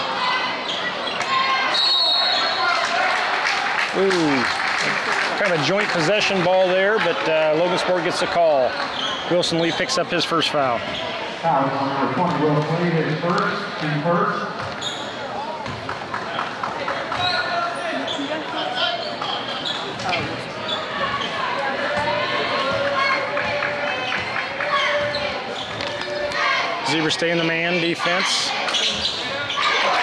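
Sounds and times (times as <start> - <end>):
crowd chatter echoing in hall: 0.0 - 30.0.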